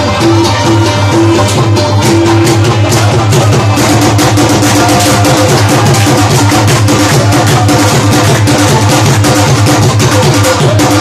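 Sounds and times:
hand drum fast beat: 0.0s - 11.0s
rubab playing: 0.0s - 11.0s.

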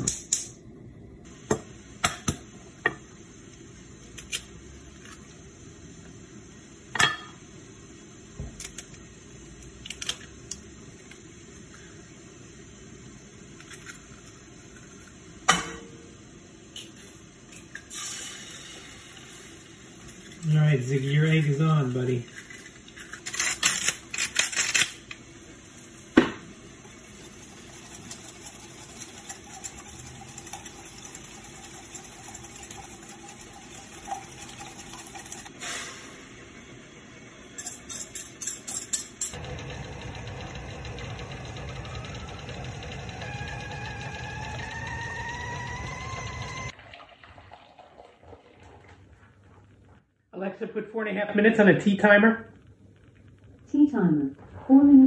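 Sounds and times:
dishes and utensils clattering: 37.6s - 39.4s.

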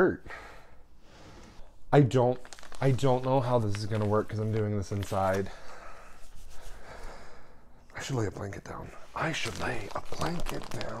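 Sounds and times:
person breathing: 0.2s - 1.8s, 5.4s - 7.9s.

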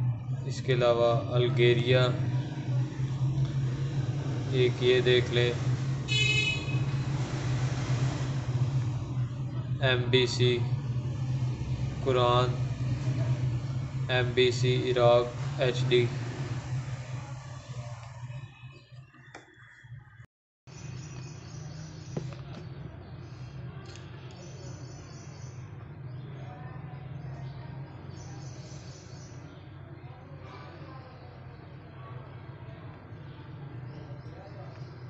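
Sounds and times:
low hum: 0.0s - 19.8s.

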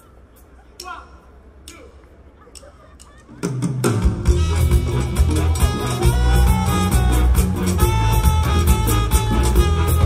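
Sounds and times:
crowd chatter: 0.0s - 10.0s
live rock band playing: 3.8s - 10.0s.

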